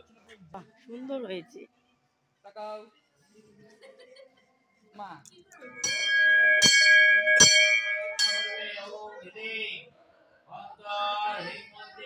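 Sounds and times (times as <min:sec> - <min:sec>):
puja bell ringing: 0:05.6 - 0:09.0.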